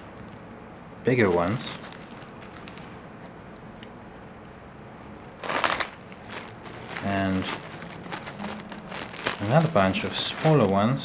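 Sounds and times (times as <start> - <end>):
plastic packaging crinkling: 0.0 - 0.5, 1.1 - 3.9, 5.3 - 11.0
faint handling noise: 1.1 - 11.0.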